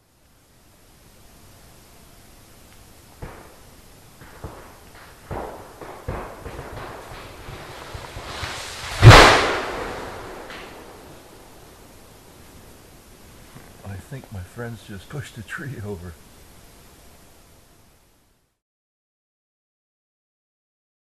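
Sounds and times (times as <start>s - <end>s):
tree crashing down: 4.2s - 11.6s
rush of falling tree: 4.2s - 11.8s.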